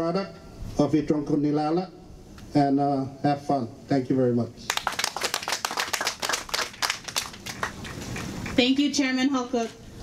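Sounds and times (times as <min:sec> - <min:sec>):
audience applauding: 0:04.7 - 0:08.6.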